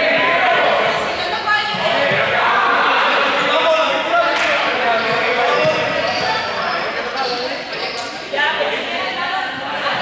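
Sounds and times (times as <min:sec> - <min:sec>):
players calling and chattering: 0:00.0 - 0:10.0
balls bouncing on court floor: 0:04.3 - 0:08.2.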